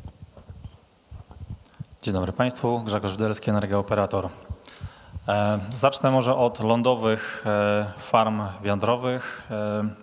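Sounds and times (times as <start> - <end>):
microphone handling thumps: 0.0 - 2.0, 4.4 - 6.0.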